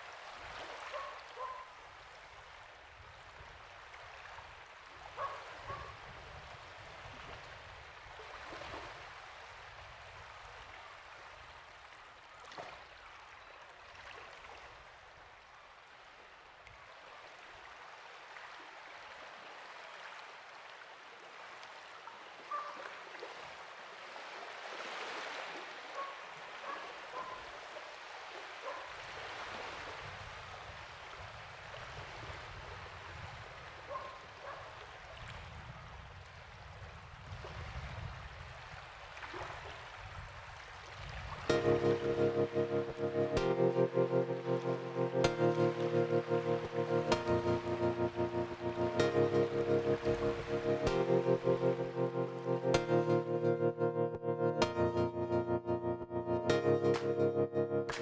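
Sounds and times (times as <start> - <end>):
water lapping over sand: 0.0 - 42.1.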